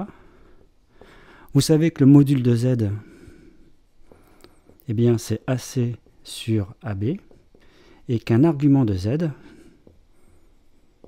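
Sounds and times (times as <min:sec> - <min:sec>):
marker writing on whiteboard: 0:04.0 - 0:08.0, 0:09.4 - 0:11.0.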